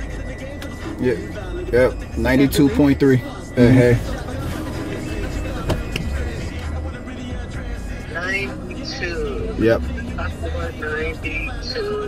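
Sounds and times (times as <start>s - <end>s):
bass line: 0.0s - 11.8s
music from car radio: 0.0s - 12.0s
person speaking: 3.6s - 4.6s.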